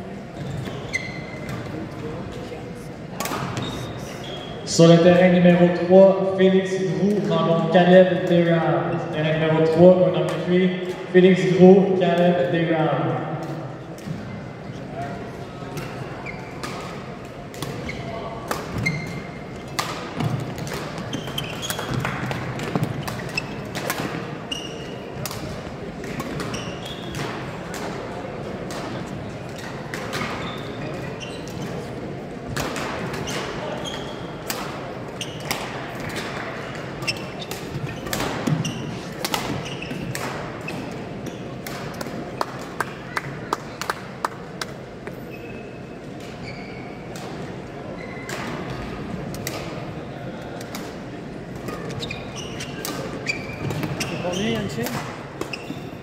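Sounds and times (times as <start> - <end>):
murmur of voices: 0.0 - 56.0
shoe squeaks: 0.4 - 1.8, 3.5 - 4.7, 16.0 - 16.7, 17.8 - 19.5, 21.0 - 22.1, 22.7 - 23.7, 24.4 - 25.2, 26.5 - 27.2, 30.2 - 31.9, 33.2 - 34.4, 35.2 - 35.6, 36.9 - 41.6, 45.1 - 47.1, 47.9 - 48.3, 51.7 - 56.0
racket hitting shuttlecock: 16.6 - 24.4, 32.5 - 33.6, 34.4 - 41.0, 41.6 - 43.0.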